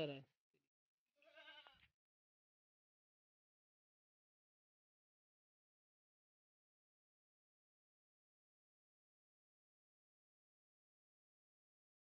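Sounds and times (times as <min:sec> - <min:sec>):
goat bleating: 0:01.2 - 0:01.8.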